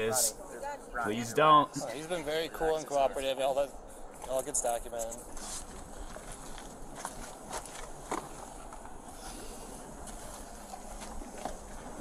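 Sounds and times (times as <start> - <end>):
footsteps and shuffling: 4.1 - 9.2, 9.9 - 12.0.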